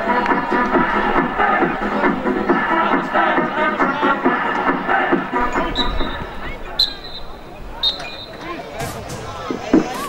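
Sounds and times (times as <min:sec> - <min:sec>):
faint crowd chatter: 0:00.0 - 0:10.0
referee's whistle blasts: 0:05.6 - 0:08.5.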